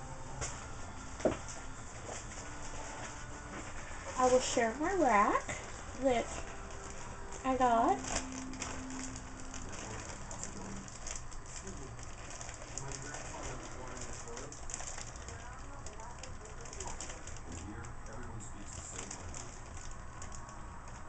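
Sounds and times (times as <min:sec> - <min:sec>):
packaging rustling and crinkling: 0:00.4 - 0:21.0.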